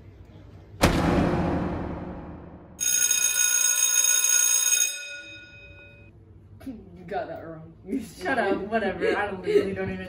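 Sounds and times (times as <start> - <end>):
bell ringing high tones: 2.8 - 6.1.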